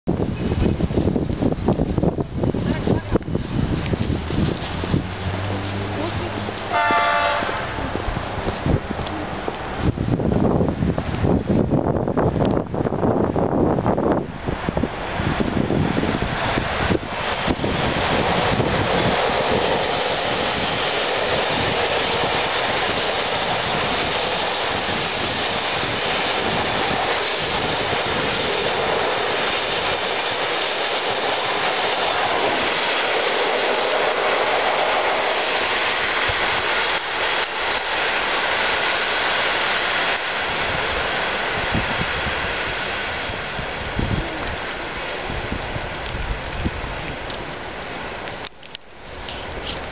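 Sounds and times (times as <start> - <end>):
train wheels rushing on rails: 0.1 - 49.9
wind buffeting microphone: 0.1 - 49.9.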